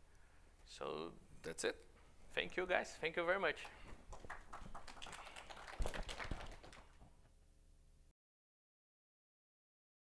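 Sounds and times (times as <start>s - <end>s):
light applause: 3.6s - 7.1s.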